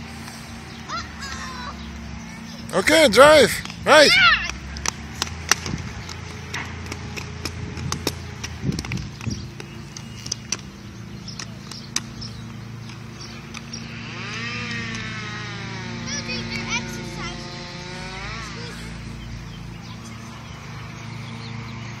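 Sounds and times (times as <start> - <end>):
skate wheels rolling on asphalt: 0.0 - 22.0
steady low hum: 0.0 - 22.0
sharp skate clacks: 3.6 - 10.7
child's wordless call: 3.9 - 4.5.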